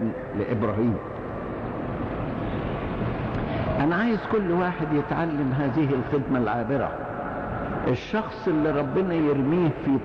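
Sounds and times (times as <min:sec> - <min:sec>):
steady hiss and rumble: 0:00.0 - 0:10.0.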